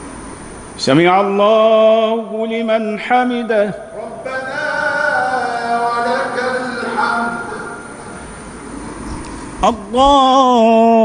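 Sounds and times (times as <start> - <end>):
low rumble of echoing hall: 0.0 - 11.0
man chanting prayer over loudspeakers: 0.8 - 8.2, 9.6 - 11.0.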